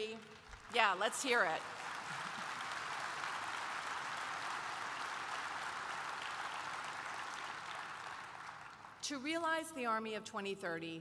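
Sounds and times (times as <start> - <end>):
large audience applauding: 0.0 - 9.0.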